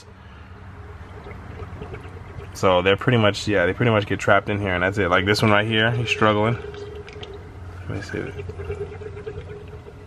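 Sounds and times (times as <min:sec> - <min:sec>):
water trickling into tank: 0:00.0 - 0:10.0.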